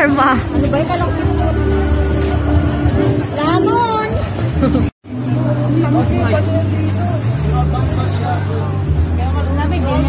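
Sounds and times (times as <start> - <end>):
low hum of street noise: 0.0 - 10.0.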